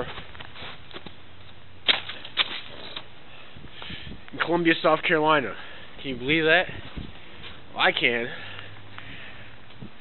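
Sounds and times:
footsteps crunching on ice: 0.0s - 1.2s.

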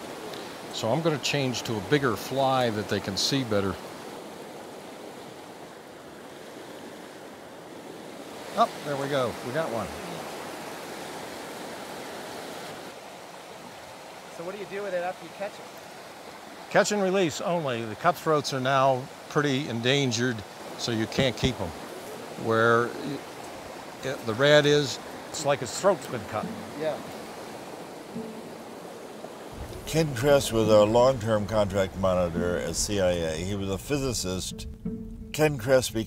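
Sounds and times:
stream rushing over rocks: 0.0s - 33.6s.

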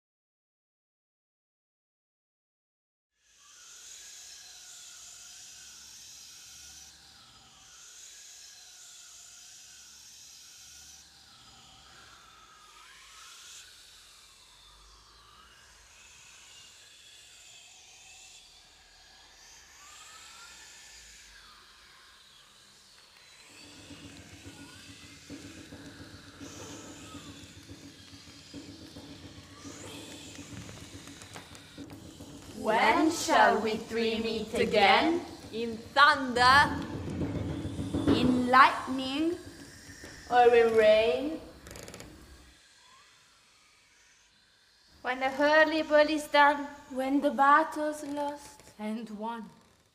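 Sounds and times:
hiss with whistle-like tones: 3.3s - 48.8s
low steady drone: 14.1s - 42.5s.

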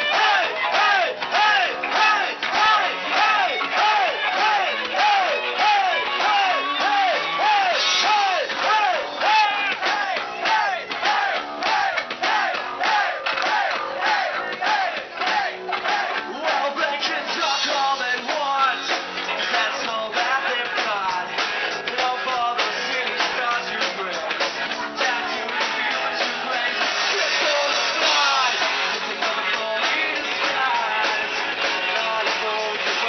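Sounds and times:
crowd chanting: 0.0s - 33.0s
punk rock band playing: 0.0s - 33.0s
shouted vocals: 0.0s - 33.0s.

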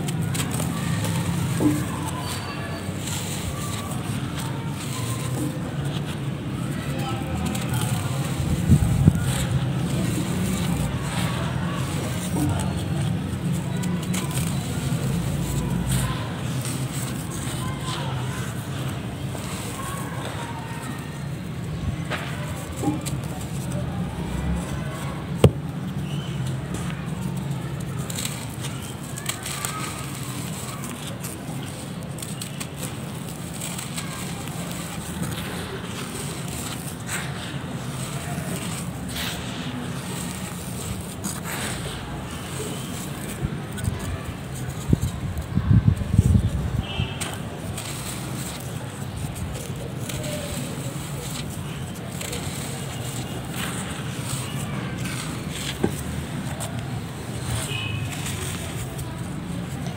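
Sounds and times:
dried mud crushed by hand: 0.0s - 59.9s.

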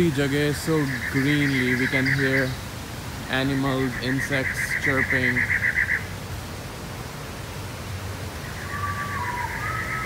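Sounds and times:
insects trilling: 0.0s - 6.2s, 8.4s - 10.0s
background hiss: 0.0s - 10.0s.

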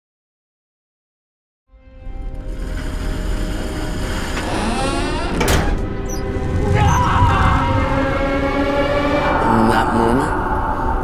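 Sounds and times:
ominous drone: 2.4s - 11.0s
metal door scraping and screeching: 4.1s - 8.0s.

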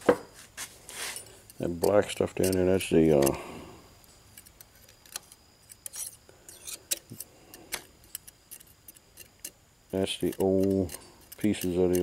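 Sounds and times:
steel pick clicking on metal: 1.4s - 3.4s, 4.3s - 12.0s.

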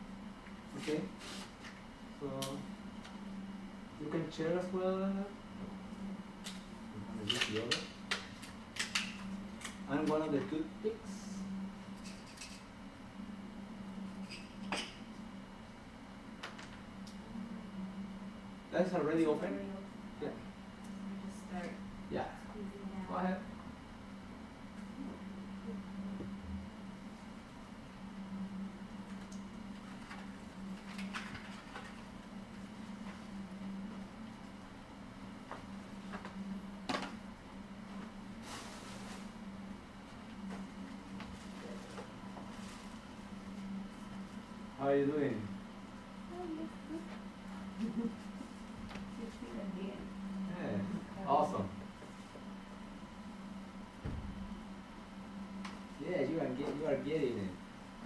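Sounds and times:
steady low hum: 0.0s - 58.0s
paper and plastic rustling: 41.3s - 43.1s.

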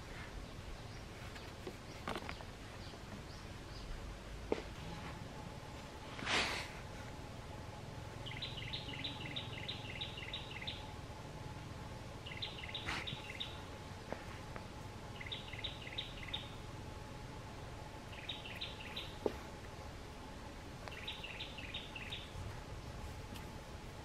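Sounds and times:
bird chirping: 8.0s - 11.6s, 12.2s - 14.2s, 15.0s - 16.8s, 17.5s - 20.0s, 20.8s - 23.0s.

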